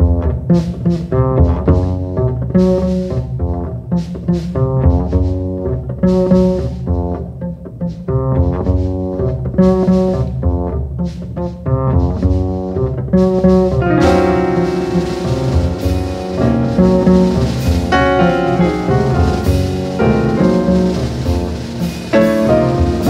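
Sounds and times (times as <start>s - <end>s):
double bass plucked: 0.0s - 23.0s.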